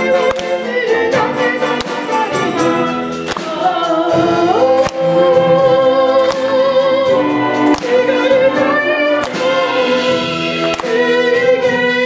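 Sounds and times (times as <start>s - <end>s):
percussion stroke: 0.0s - 12.0s.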